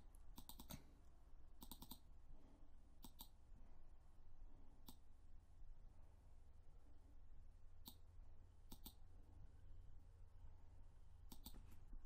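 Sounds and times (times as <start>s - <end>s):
computer mouse clicks: 0.3s - 0.9s, 1.6s - 2.0s, 3.0s - 3.4s, 4.8s - 5.0s, 7.8s - 8.0s, 8.7s - 9.0s, 11.3s - 11.7s.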